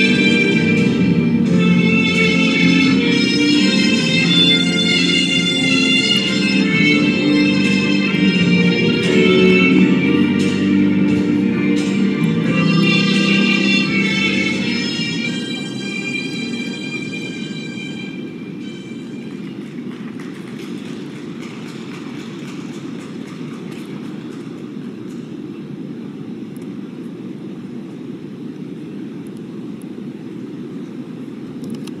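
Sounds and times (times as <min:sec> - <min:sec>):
blues music: 0:00.0 - 0:24.8
low rumble of arena hall: 0:00.0 - 0:32.0.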